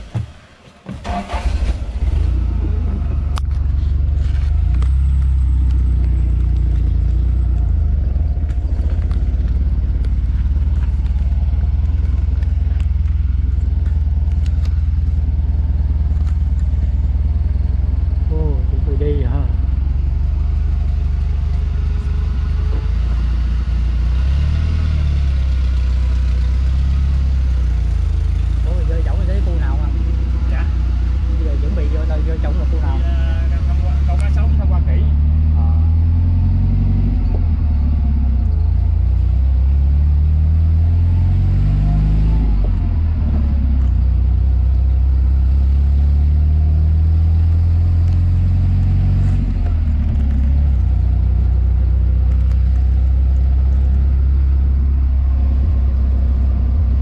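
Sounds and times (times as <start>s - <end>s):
vehicle ride rumble: 0.0s - 57.0s
people talking: 18.3s - 19.6s, 28.6s - 36.0s.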